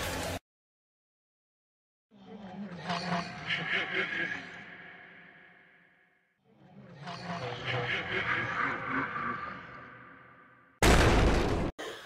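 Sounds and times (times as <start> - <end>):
eerie echoing sound effect: 2.7 - 12.0.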